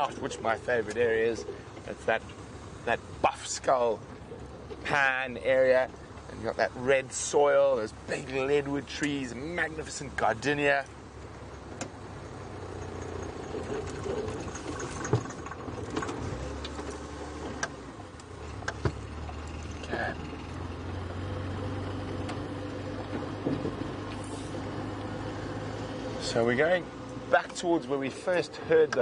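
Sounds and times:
vehicle engine running: 0.0 - 29.0
knocks and rattles: 12.8 - 17.7.

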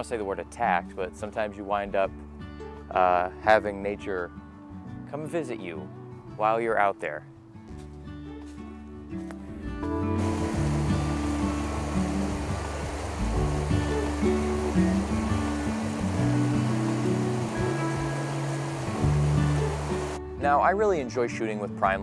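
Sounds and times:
background music: 0.0 - 22.0
water rushing over rocks: 10.2 - 20.2.

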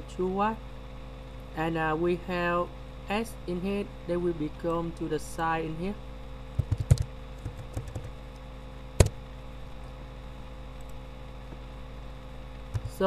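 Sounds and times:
electrical mains hum: 0.0 - 13.0
keyboard typing clicks: 6.6 - 8.1.

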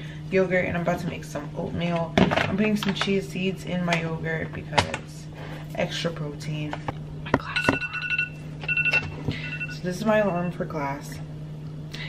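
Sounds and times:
smartphone alarm beeping: 7.6 - 9.8.

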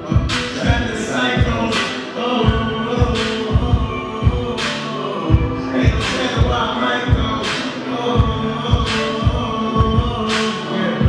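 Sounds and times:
held synth chords: 0.0 - 11.0
deep kick drum thumping: 2.5 - 4.6, 5.3 - 7.4, 8.2 - 10.2.

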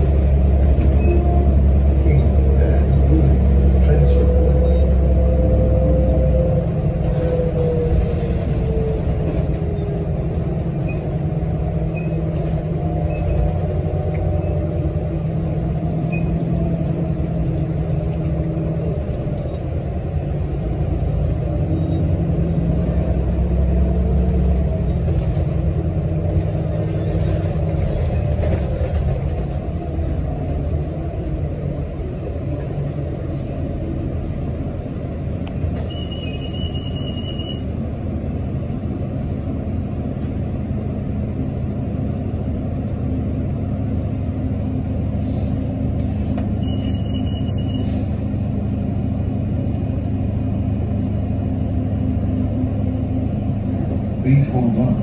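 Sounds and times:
bus engine rumble: 0.0 - 55.0.

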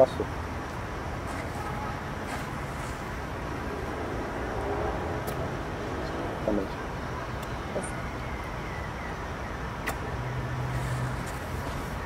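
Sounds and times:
low outdoor rumble: 0.0 - 12.0
sharp click: 9.8 - 10.0.

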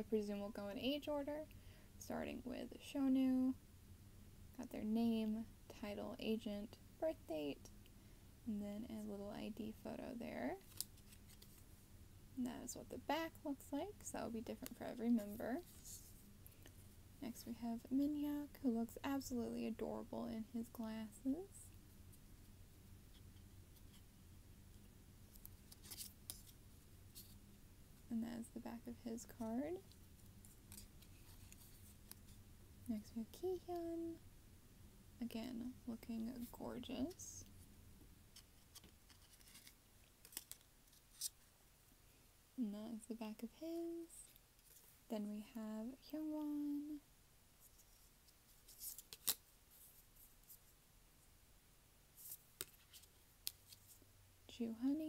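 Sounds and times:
plastic cards clicking and scraping: 25.4 - 26.6, 38.4 - 41.4, 48.7 - 49.4.

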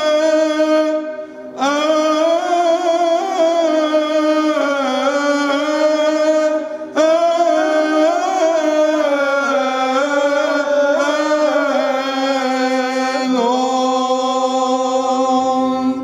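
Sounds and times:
men singing chant: 1.6 - 16.0.

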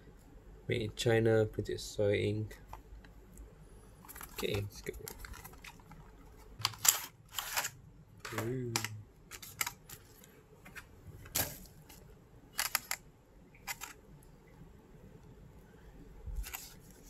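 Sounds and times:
plastic packaging crackling: 4.0 - 10.3, 11.4 - 13.0, 13.6 - 14.0, 16.4 - 17.0.

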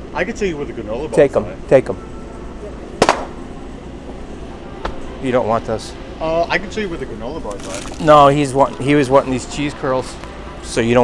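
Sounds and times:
low indoor hum: 0.0 - 11.0.

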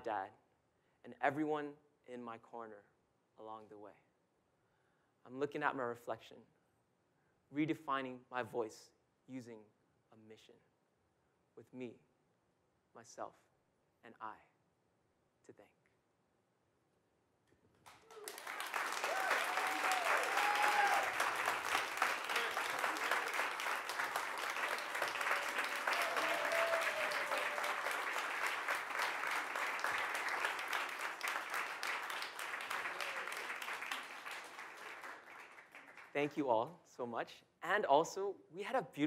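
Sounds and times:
audience applauding: 17.8 - 36.2.

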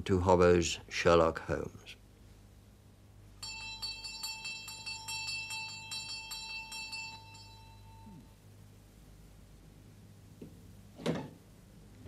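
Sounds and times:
small bell ringing: 3.4 - 8.4.

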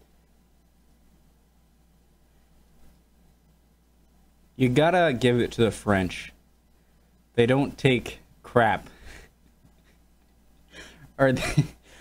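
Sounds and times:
low steady hum: 0.0 - 12.0
man laughing breathily: 10.7 - 12.0.

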